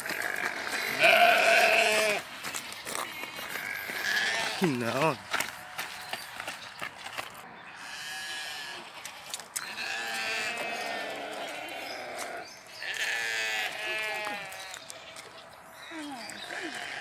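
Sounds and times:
farm animals bleating: 0.0s - 6.4s, 7.5s - 17.0s.

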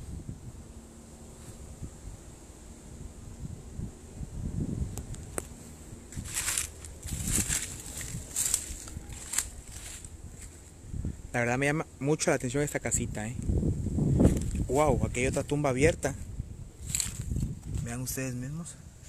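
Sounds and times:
crunching dry leaves: 5.2s - 10.8s, 13.5s - 18.0s
footsteps scuffing on ground: 5.4s - 10.7s, 14.2s - 15.6s, 16.8s - 17.9s.

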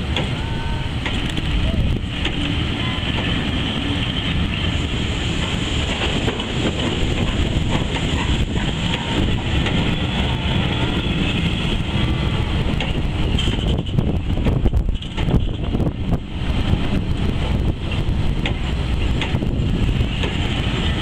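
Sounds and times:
train wheels rumbling and rattling: 0.0s - 21.0s.

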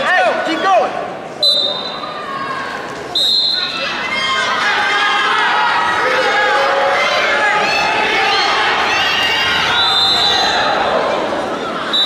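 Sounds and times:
crowd voices in a gym: 0.0s - 12.0s
referee's whistle blasts: 1.4s - 2.1s, 3.1s - 3.8s, 9.7s - 10.6s.

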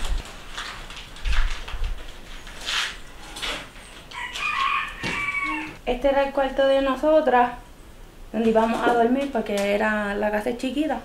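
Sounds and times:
high-pitched animal call: 4.1s - 5.8s.

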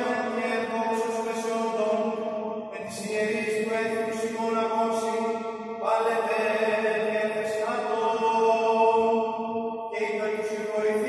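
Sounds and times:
steady vocal drone: 0.0s - 11.0s.

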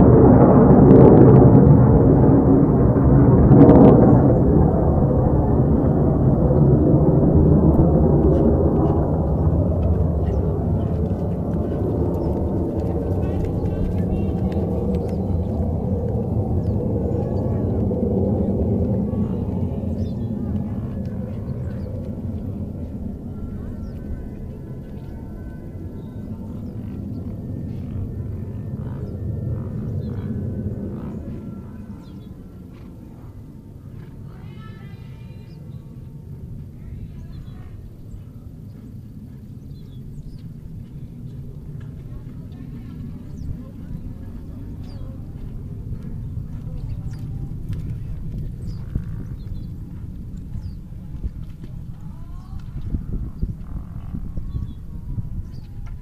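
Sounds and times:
distant music: 0.0s - 36.7s
faint distant voices: 0.0s - 56.0s
low rumble on microphone: 0.0s - 56.0s.

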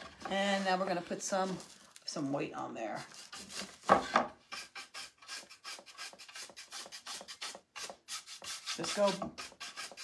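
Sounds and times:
brush scrubbing wooden boards: 5.6s - 10.0s.

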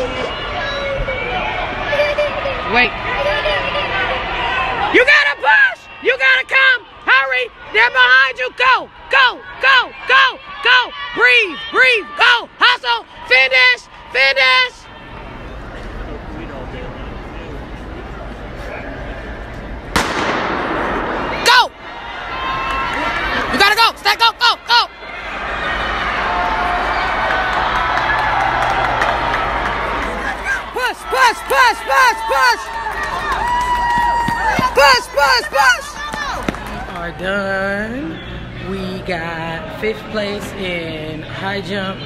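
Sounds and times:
crowd murmur: 0.0s - 5.0s, 29.4s - 33.4s
loud shout: 0.0s - 15.0s, 21.3s - 36.6s
crowd talking and calling out: 0.0s - 42.0s.

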